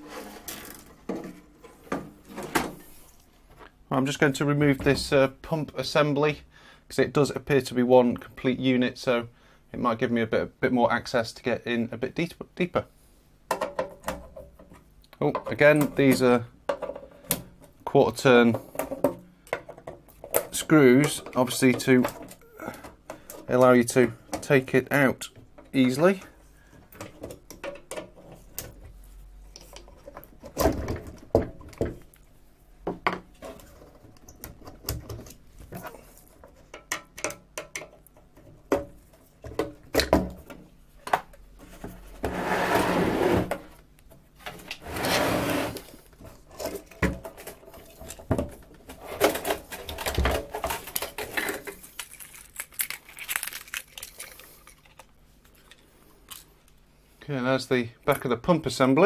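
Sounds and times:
metal scraping: 0:00.0 - 0:01.8.

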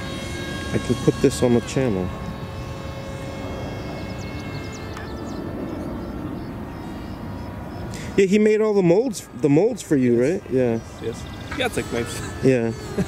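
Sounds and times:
distant aircraft engine drone: 0:00.0 - 0:13.0.

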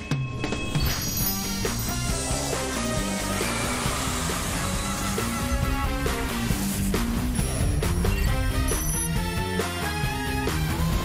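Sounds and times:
upbeat theme music: 0:00.0 - 0:11.0
hissing sweep effect: 0:02.2 - 0:07.4.

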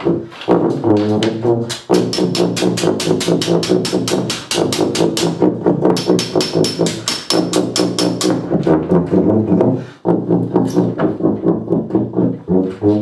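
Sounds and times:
low bass tuba notes: 0:00.0 - 0:13.0
fast hammer strikes: 0:01.7 - 0:08.5.

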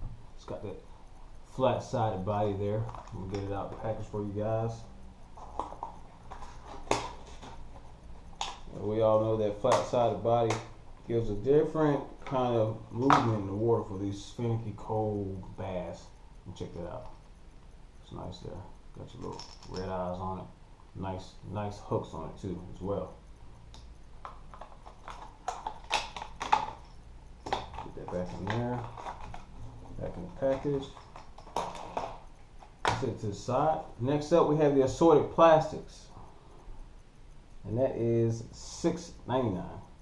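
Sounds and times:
plastic packaging crinkling: 0:24.3 - 0:33.0.

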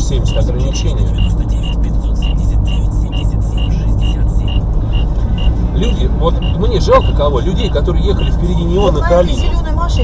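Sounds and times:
car engine and road rumble: 0:00.0 - 0:10.0
short high electronic beeps: 0:01.1 - 0:05.5.

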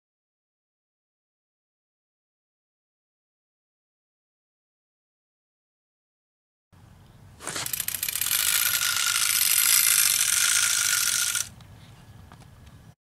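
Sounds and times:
rapid mechanical ratcheting clicks: 0:07.5 - 0:11.6.

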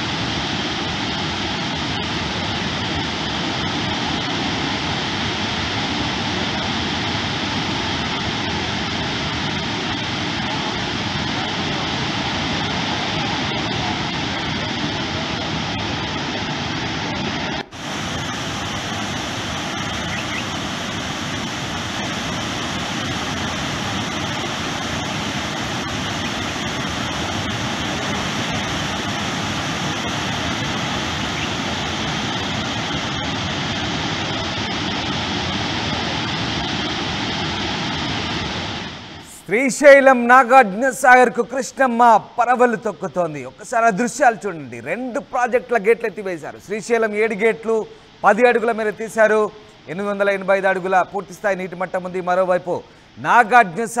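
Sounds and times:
floodwater rushing: 0:00.0 - 0:54.0.

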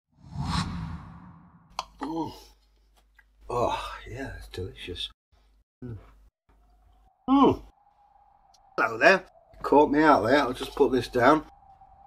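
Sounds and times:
whoosh: 0:00.2 - 0:01.7.

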